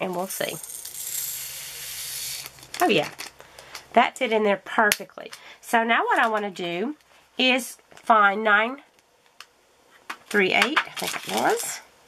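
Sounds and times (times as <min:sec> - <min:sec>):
small beads pouring into plastic: 0:00.6 - 0:03.3.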